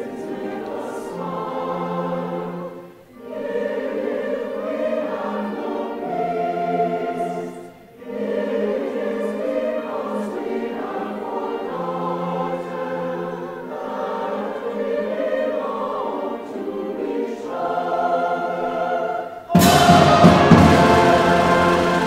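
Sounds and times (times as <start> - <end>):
large choir singing: 0.0 - 22.0
orchestral accompaniment: 19.5 - 22.0.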